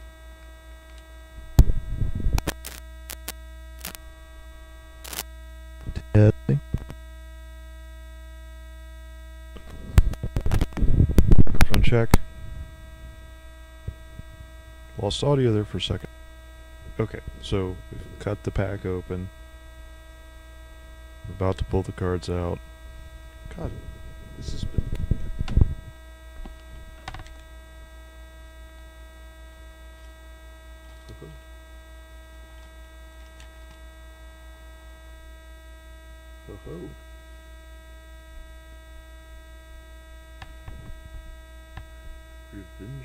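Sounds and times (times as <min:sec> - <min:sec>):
electrical mains hum: 0:00.0 - 0:43.0.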